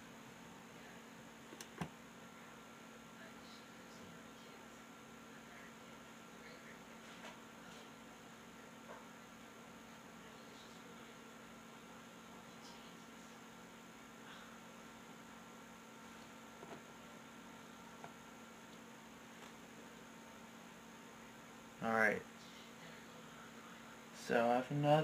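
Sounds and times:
faint electrical hum: 0.0s - 25.0s.

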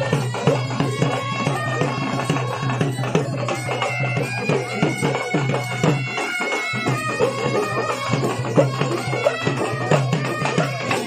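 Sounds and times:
drum beating: 0.0s - 11.0s
reed pipes playing melody: 0.0s - 11.0s.

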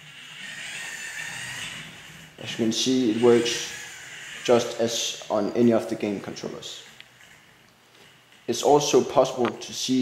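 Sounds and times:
small motors whirring: 0.0s - 8.5s.

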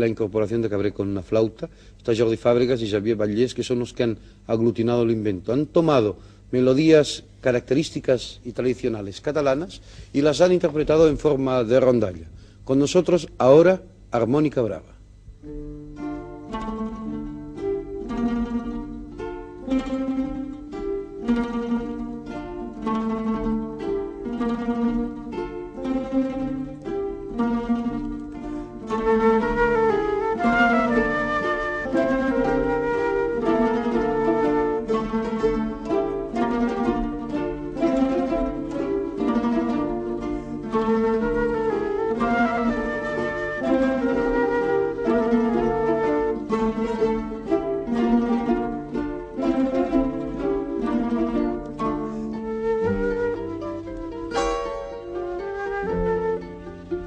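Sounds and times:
plucked string ensemble: 0.0s - 1.5s, 15.4s - 57.0s
flute melody: 16.0s - 57.0s.

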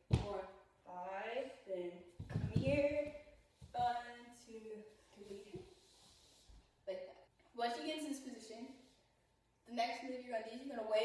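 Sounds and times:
woman speaking: 0.0s - 5.6s.

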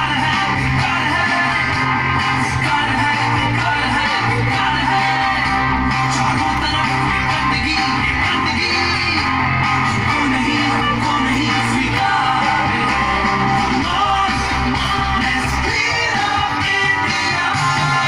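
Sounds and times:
song with singing and bass: 0.0s - 18.0s.

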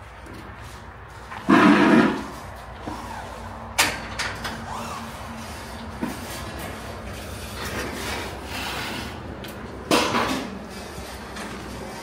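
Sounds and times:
loud rough scrape: 0.6s - 3.6s, 4.7s - 9.4s.

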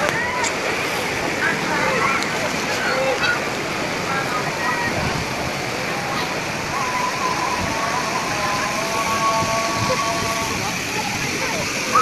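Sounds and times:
water rushing: 0.0s - 12.0s.

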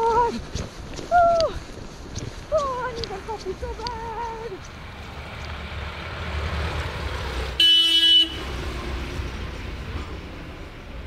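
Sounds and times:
low traffic rumble: 0.0s - 11.0s
vehicle horn honk: 7.6s - 8.5s.

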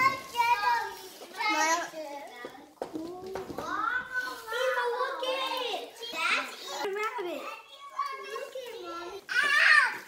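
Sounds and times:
children talking and exclaiming: 0.0s - 10.0s.

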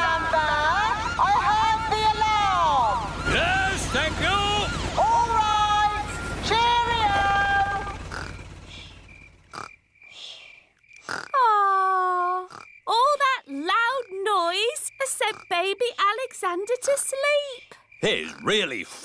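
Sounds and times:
cartoon voices calling out: 0.0s - 8.0s
long falling call: 0.0s - 9.1s
helicopter hum: 0.0s - 10.2s.

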